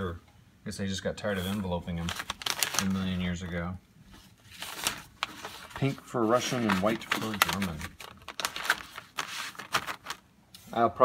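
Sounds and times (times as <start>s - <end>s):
paper envelopes flipped by hand: 1.4s - 3.1s, 4.4s - 10.2s.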